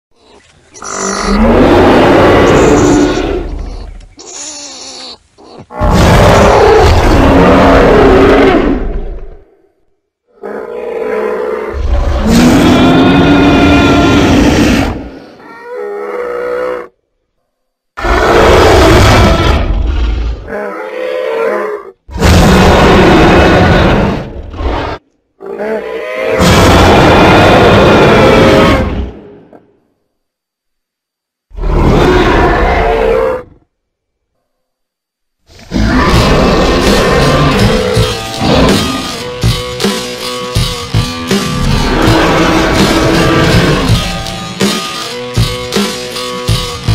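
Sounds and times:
dinosaur roar: 0:00.2 - 0:09.5, 0:10.3 - 0:17.0, 0:18.0 - 0:29.6, 0:31.5 - 0:33.7, 0:35.5 - 0:39.6, 0:40.9 - 0:44.4
dinosaur growl: 0:00.8 - 0:04.0, 0:10.3 - 0:16.9, 0:18.0 - 0:29.6, 0:31.5 - 0:33.7, 0:35.5 - 0:39.6, 0:40.9 - 0:44.3.

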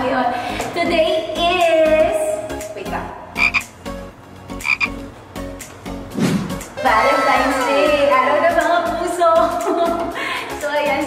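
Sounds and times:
frogs croaking: 0:03.4 - 0:05.1.

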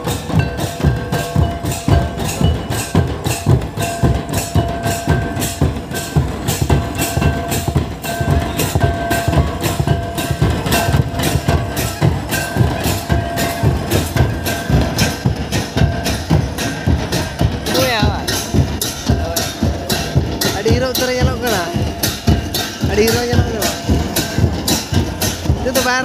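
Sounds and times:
hand drums dance rhythm: 0:00.0 - 0:26.0.

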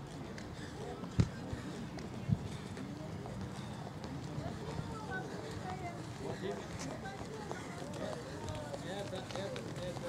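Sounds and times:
chatter of many voices: 0:00.0 - 0:10.0
runners' footfalls on track: 0:00.0 - 0:10.0.

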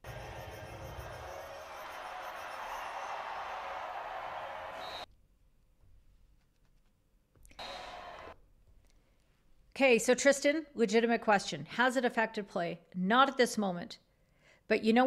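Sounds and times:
stadium crowd din: 0:00.0 - 0:05.0.

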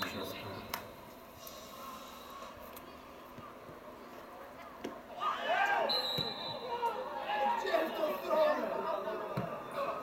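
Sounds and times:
players shouting: 0:05.1 - 0:10.0
referee's whistle blast: 0:05.8 - 0:06.7.

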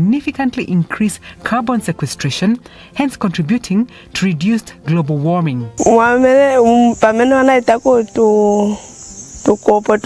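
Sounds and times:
woman speaking: 0:00.0 - 0:10.0
crickets chirring: 0:05.8 - 0:10.0.

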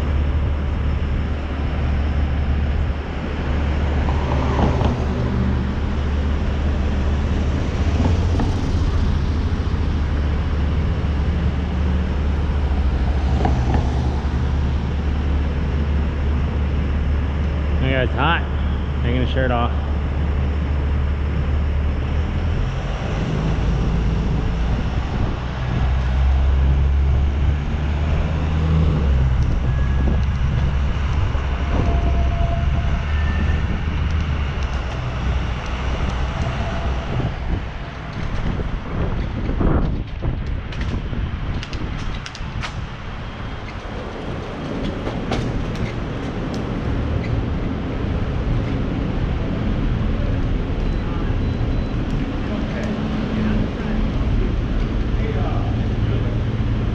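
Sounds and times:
traffic: 0:00.0 - 0:56.9
wind rumble: 0:00.0 - 0:56.9.

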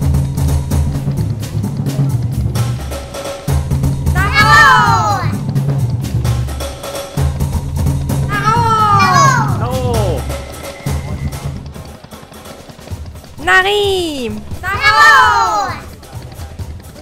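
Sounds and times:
kettledrum beats: 0:00.0 - 0:17.0
long voice call: 0:08.3 - 0:10.3, 0:13.4 - 0:16.0.

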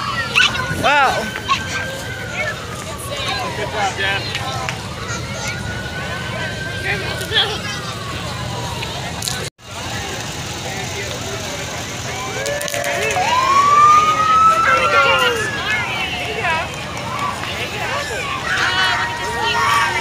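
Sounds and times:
emergency siren wailing: 0:00.0 - 0:09.5, 0:11.0 - 0:20.0
crowd chatter: 0:00.0 - 0:20.0.

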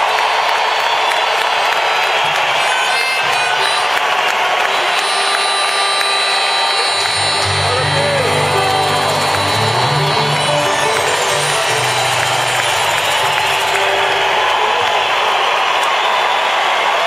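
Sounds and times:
crowd noise: 0:00.0 - 0:17.0
live band music over pa: 0:04.7 - 0:15.2.

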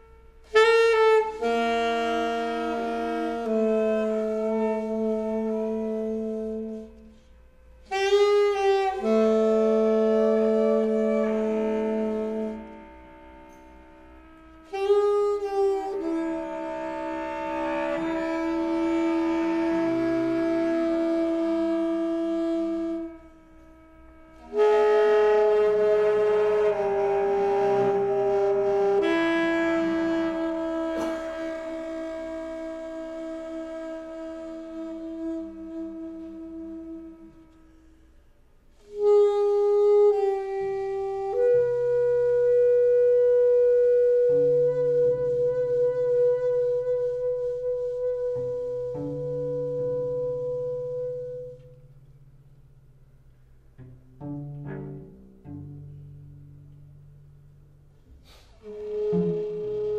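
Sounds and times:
alto saxophone long tones: 0:00.0 - 0:52.3, 0:54.2 - 0:59.9
bowed cello long tones: 0:00.0 - 0:59.9.

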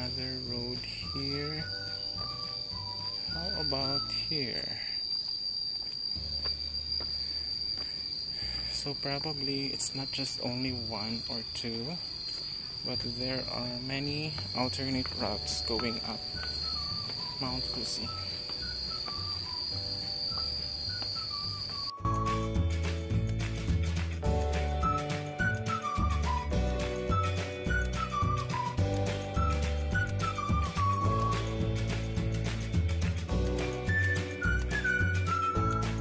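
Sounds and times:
high-pitched insect drone: 0:00.0 - 0:36.0.

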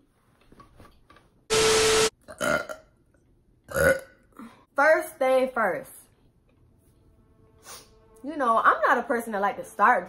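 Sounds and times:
person burping: 0:02.2 - 0:02.9, 0:03.7 - 0:04.6.

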